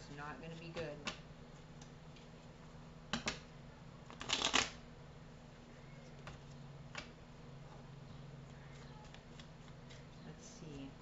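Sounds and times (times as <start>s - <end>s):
cards snapping: 4.1s - 4.8s.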